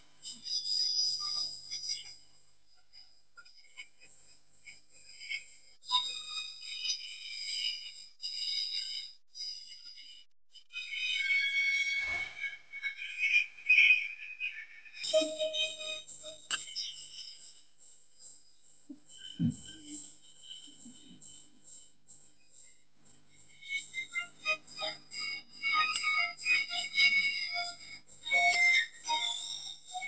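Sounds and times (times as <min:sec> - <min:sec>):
shrill whistles: 0:10.7 - 0:17.6, 0:23.5 - 0:30.0.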